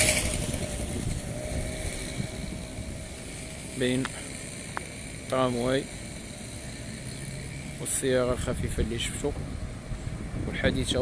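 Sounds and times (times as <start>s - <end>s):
road traffic noise: 0.0s - 11.0s.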